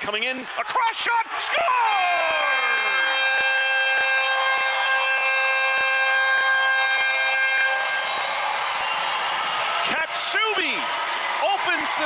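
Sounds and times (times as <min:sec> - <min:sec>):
crowd cheering: 0:00.0 - 0:12.0
arena goal horn: 0:01.6 - 0:09.0.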